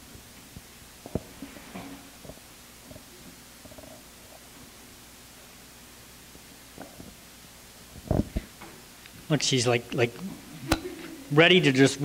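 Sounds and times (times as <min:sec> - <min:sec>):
microphone handling noise: 0:07.9 - 0:08.6.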